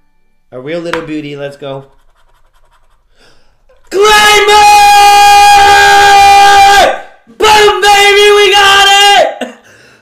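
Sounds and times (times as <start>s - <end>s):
man drawing breath: 3.0s - 3.7s, 9.6s - 10.0s
man screaming loudly: 3.9s - 9.5s.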